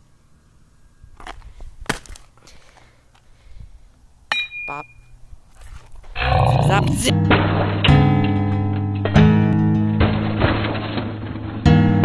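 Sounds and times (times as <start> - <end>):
bat knocking broken screen pieces: 9.9 - 11.6.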